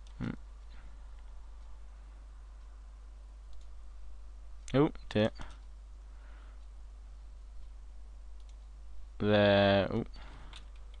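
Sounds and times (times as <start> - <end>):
low steady hum: 0.0 - 11.0
computer mouse clicks: 3.5 - 3.8, 8.4 - 8.7, 10.3 - 11.0.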